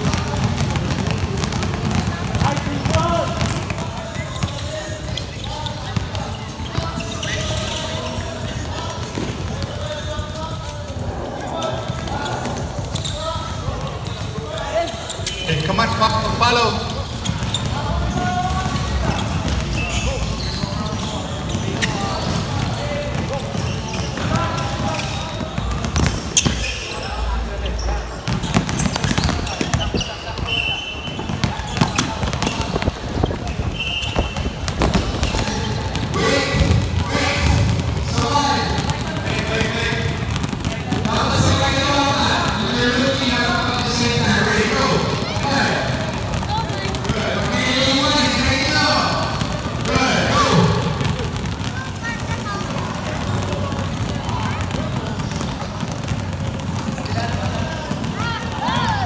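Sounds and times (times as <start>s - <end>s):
basketballs bouncing on hardwood: 0.0s - 10.3s, 15.2s - 26.7s, 28.2s - 59.0s
players chattering and calling: 0.0s - 59.0s.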